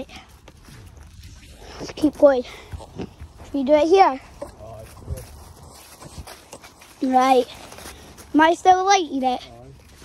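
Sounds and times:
footsteps on muddy ground: 0.0 - 10.0.

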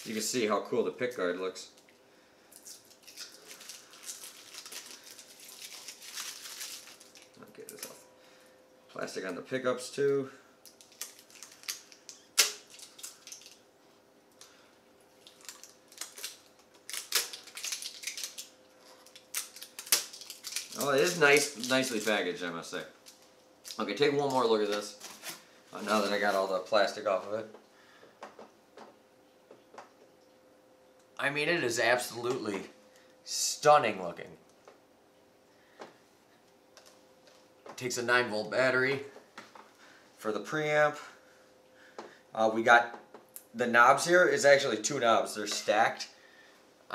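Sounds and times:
plastic film crinkling and snapping: 2.6 - 8.0, 10.6 - 13.6, 15.2 - 26.6.

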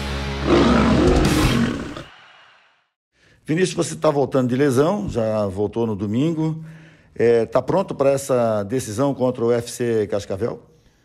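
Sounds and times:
heavy rock music: 0.0 - 2.1
roar sound effect: 0.4 - 2.6.

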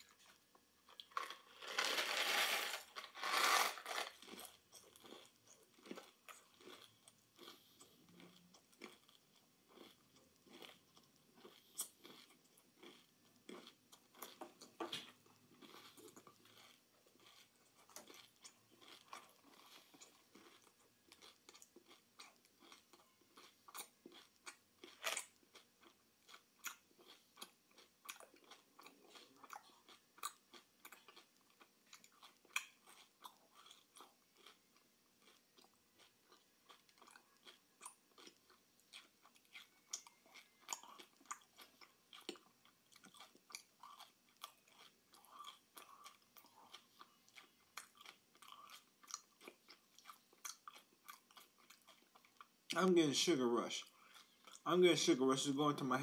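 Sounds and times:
person chewing snack food: 0.0 - 56.0.

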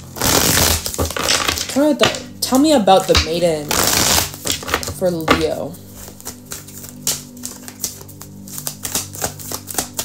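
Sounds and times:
soft background music: 0.0 - 10.0
cards being shuffled: 3.1 - 10.0.

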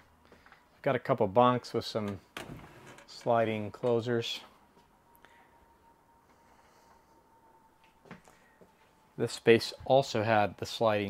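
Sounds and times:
faint steady high tone: 3.2 - 10.9.

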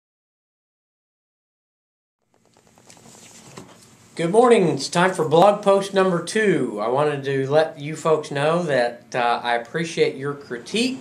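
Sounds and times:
faint rustling with light clicks: 2.2 - 4.0.

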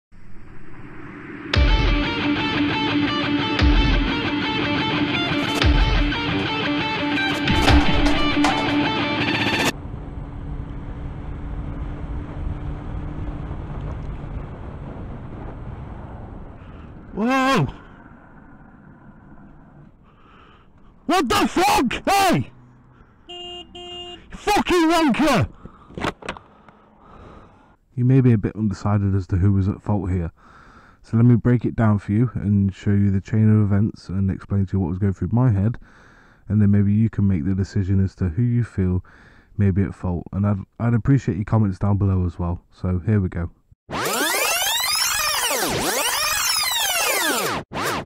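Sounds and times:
wind rush: 0.1 - 2.8, 9.8 - 17.2
rock music with electric guitar: 1.5 - 9.7
low engine hum: 9.7 - 17.2.

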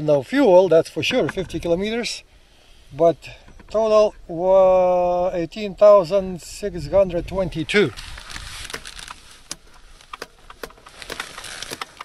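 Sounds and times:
faint steady hiss: 0.0 - 12.0
motorcycle chain clicking and rattling: 8.0 - 12.0.

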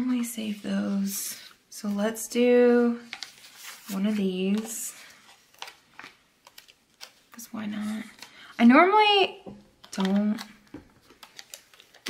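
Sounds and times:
sticker sheets ticking and rustling: 9.8 - 12.0.

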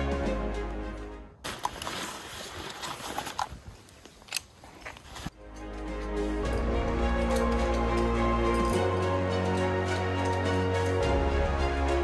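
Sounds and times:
background music: 0.0 - 1.4, 5.4 - 12.0
outdoor ambience: 0.0 - 12.0.

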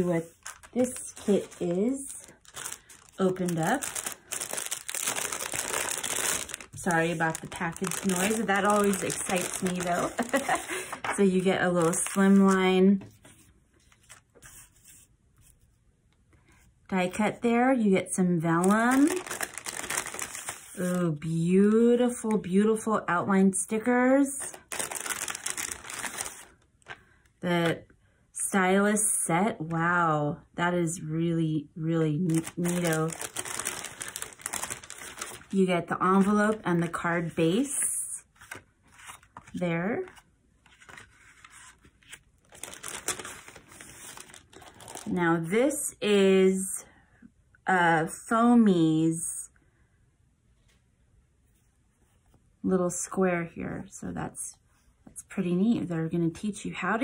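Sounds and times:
paper rustling: 0.0 - 15.6, 18.6 - 21.0, 24.5 - 27.0, 32.3 - 35.5, 36.1 - 45.1.

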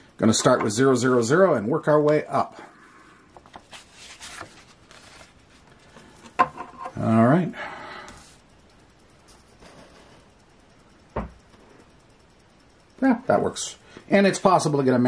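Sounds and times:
thump: 11.2 - 11.4.

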